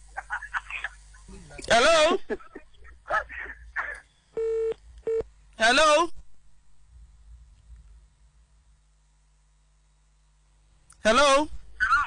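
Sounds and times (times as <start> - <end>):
telephone line beeps: 4.4 - 5.2.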